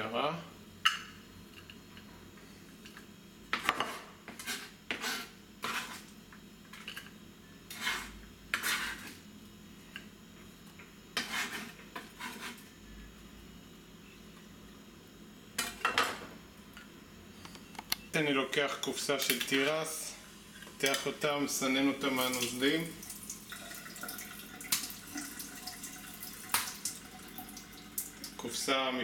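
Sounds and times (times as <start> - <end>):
knife scraping cutting board: 3.6 - 6.1, 7.7 - 9.2, 11.2 - 12.7.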